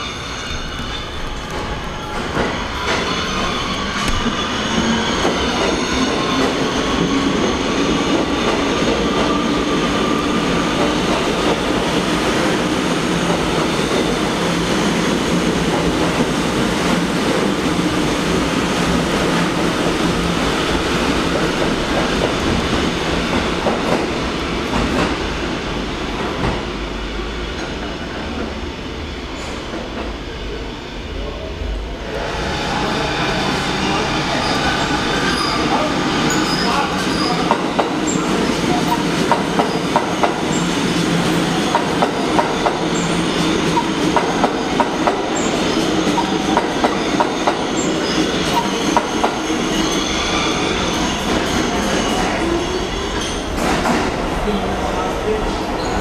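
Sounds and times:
subway train wheel-on-rail noise: 0.0 - 56.0
track clickety-clack: 0.4 - 26.8, 34.4 - 56.0.

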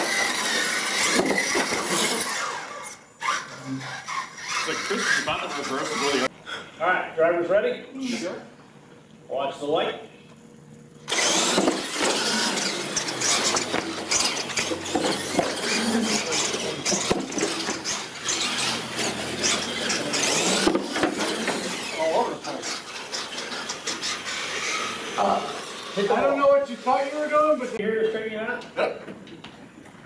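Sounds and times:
toy truck motors whining: 0.0 - 6.3, 11.0 - 27.8
tyres squealing and scrubbing: 0.0 - 6.3, 11.1 - 27.8.

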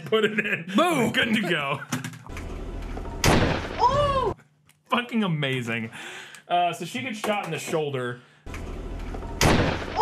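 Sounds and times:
woman's pained cry: 3.8 - 4.4
pistol shot: 9.4 - 10.0.

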